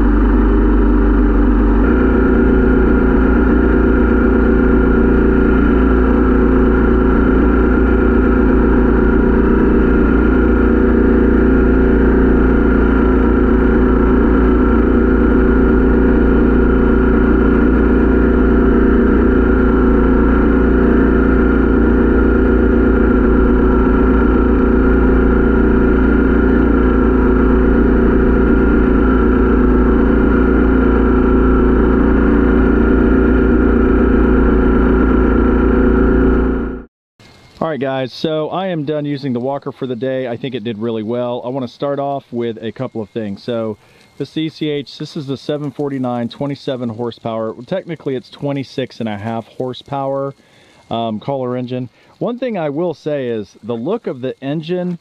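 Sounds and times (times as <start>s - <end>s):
leaf blower blowing: 0.0s - 37.6s, 42.7s - 46.0s, 50.2s - 52.4s
mower engine running: 0.0s - 55.0s.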